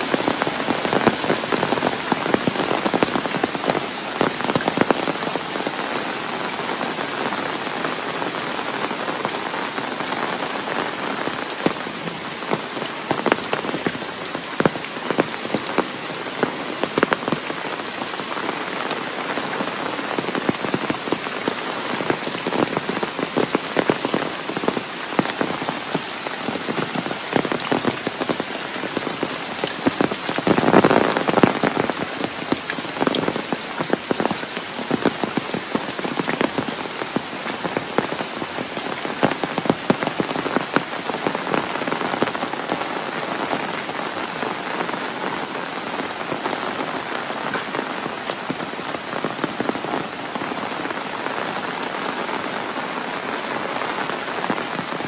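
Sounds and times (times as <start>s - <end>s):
heavy rain on foliage: 0.0s - 55.0s.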